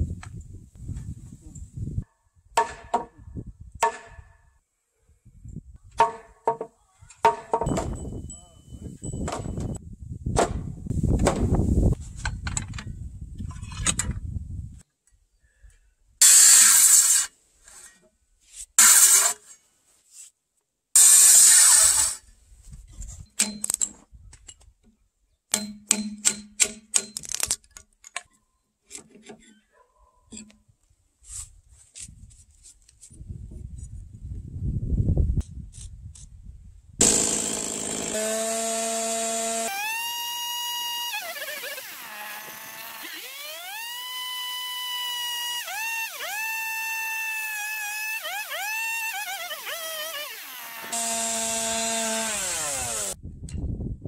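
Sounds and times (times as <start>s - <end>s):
circular saw cutting timber: 16.2s - 18.0s, 18.8s - 19.6s, 21.0s - 22.2s, 37.0s - 53.2s.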